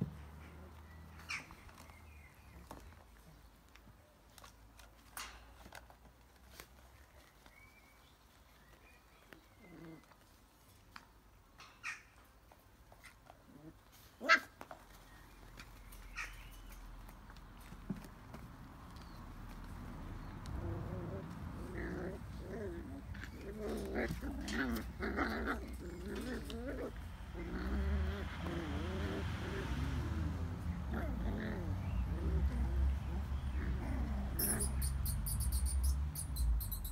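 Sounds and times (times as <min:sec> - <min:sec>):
puppies whining and growling: 0:08.7 - 0:10.3, 0:19.0 - 0:36.9
puppy yelping: 0:33.6 - 0:36.9
puppy squeaky yip: 0:34.4 - 0:36.9.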